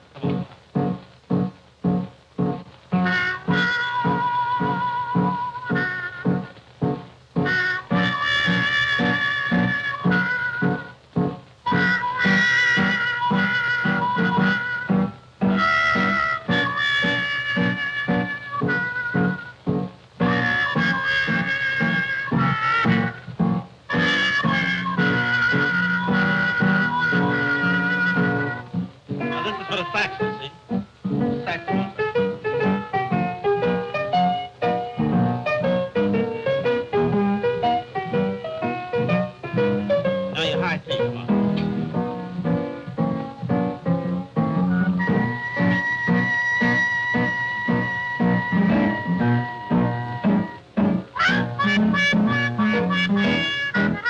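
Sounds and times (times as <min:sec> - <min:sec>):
upright piano chords: 0:00.0 - 0:54.0
trumpet playing bluesy melody: 0:01.9 - 0:11.0, 0:11.6 - 0:54.0.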